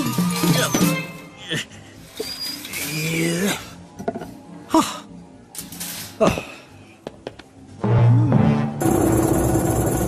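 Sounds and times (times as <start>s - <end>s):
light cartoon music: 0.0s - 10.0s.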